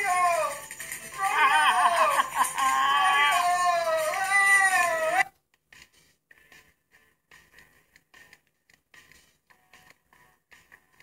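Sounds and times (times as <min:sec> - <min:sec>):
high-pitched animal wail: 0:01.2 - 0:05.3.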